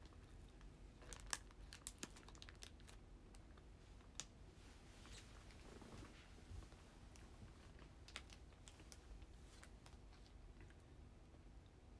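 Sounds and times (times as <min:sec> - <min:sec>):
food wrapper crinkling: 0:01.0 - 0:03.0.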